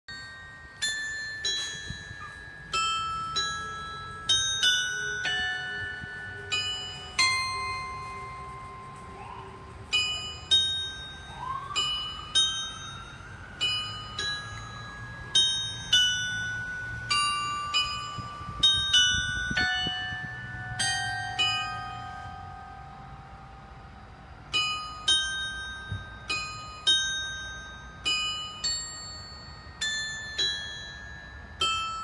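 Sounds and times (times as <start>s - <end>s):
clock tower bell chimes: 0.1s - 32.0s.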